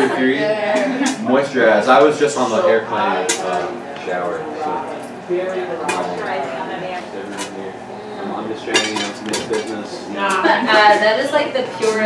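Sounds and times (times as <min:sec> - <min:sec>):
low voices: 0:00.0 - 0:12.0
metal cookware clinking: 0:08.7 - 0:10.4.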